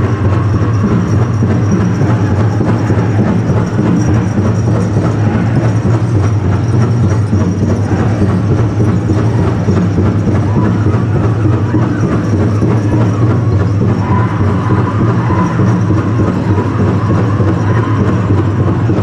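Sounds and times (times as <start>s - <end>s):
big drum beating fast: 0.0s - 19.0s.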